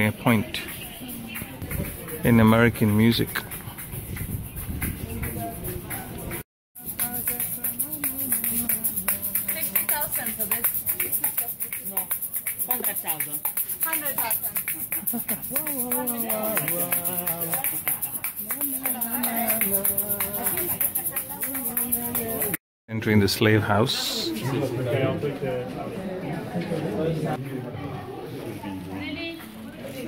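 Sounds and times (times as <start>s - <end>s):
fast clicking rhythm: 0.4s - 22.6s
man chanting: 15.6s - 17.8s.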